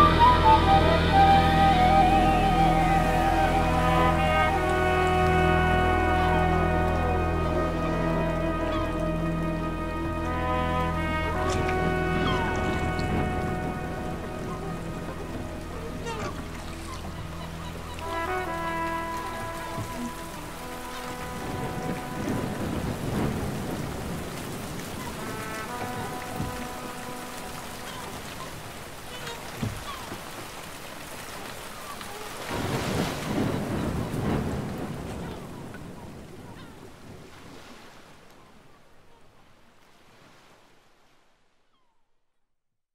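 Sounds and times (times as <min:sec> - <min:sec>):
low sustained drone: 0:00.0 - 0:18.8
rain: 0:00.0 - 0:41.5
faint gliding cries: 0:10.8 - 0:20.6
deep thunder rumble: 0:11.2 - 0:15.9, 0:21.2 - 0:26.9, 0:32.5 - 0:36.4.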